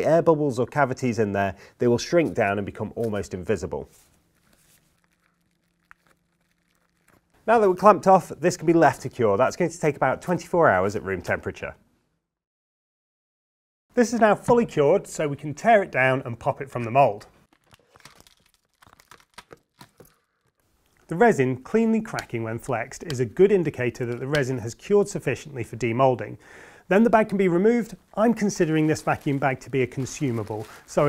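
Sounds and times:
resin cracking in plastic tube: 4.4 - 7.4, 17.4 - 21.1.

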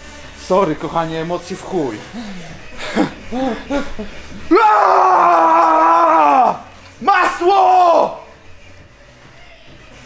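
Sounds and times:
man yelling: 4.5 - 8.3.

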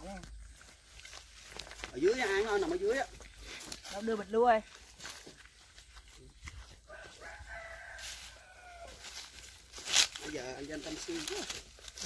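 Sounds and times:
rooster crowing faintly: 6.6 - 9.4.

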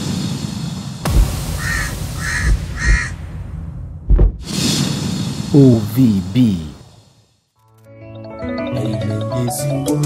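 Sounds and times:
intro music with deep low hits: 1.0 - 4.6.

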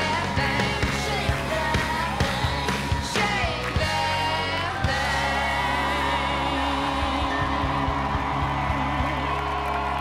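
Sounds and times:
country band playing: 0.0 - 10.0.

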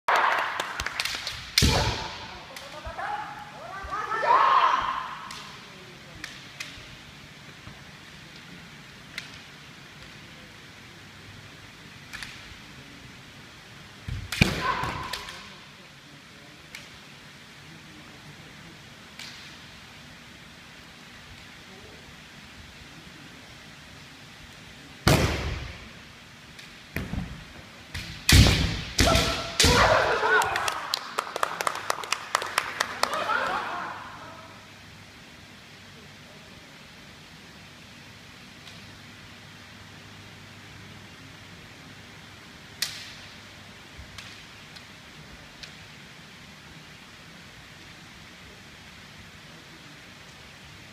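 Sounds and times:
bamboo sword strikes cracking: 1.0 - 2.7, 14.3 - 15.4, 28.0 - 30.0
people shouting: 1.6 - 5.3, 14.4 - 15.3, 29.0 - 30.8.

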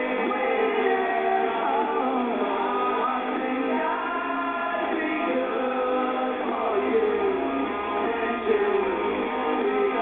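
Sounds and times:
electric guitar: 0.0 - 10.0
person singing: 0.0 - 10.0
rock band playing: 0.0 - 10.0.

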